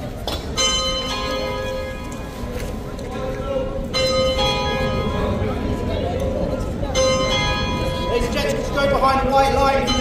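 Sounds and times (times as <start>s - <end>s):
church bells ringing: 0.5s - 10.0s.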